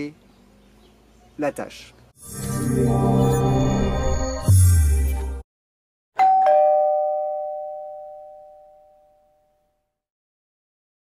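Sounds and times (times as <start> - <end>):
two-note doorbell chime: 6.2 - 9.8.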